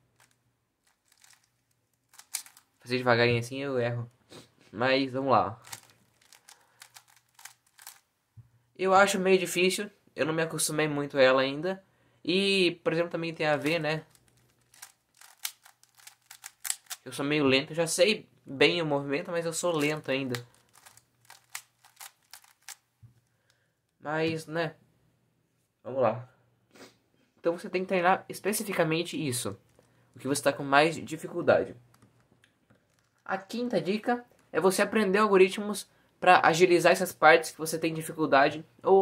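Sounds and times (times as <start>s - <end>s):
plastic puzzle cube clicking: 0.2s - 2.7s, 5.6s - 8.0s, 13.6s - 17.1s, 19.7s - 22.8s.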